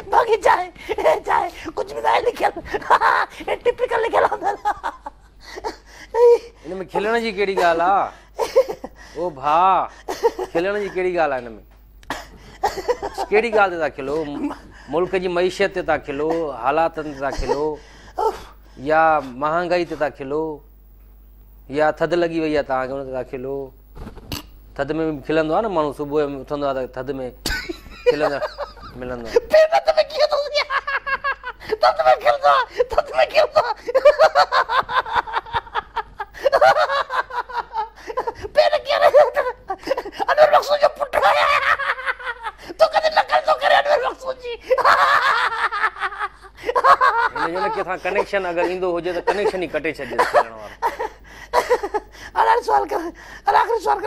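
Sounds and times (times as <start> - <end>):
man talking: 0.0 - 4.7, 6.2 - 8.2, 13.0 - 17.8, 24.8 - 27.4, 28.0 - 30.8, 38.2 - 41.5, 46.8 - 51.0
people laughing: 27.5 - 52.1
people talking: 47.2 - 50.7.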